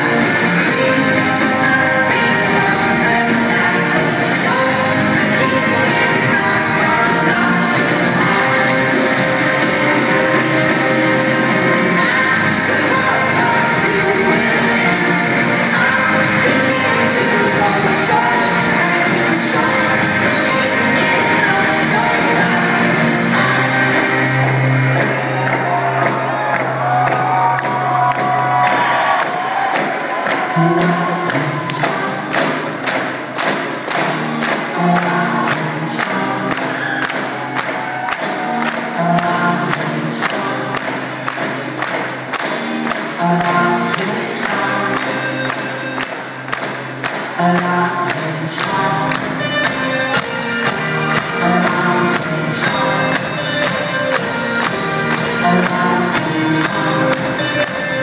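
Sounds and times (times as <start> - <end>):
drum kit beat: 0.0 - 58.0
guitars: 0.0 - 58.0
keyboard: 0.0 - 58.0
person singing: 0.0 - 58.0.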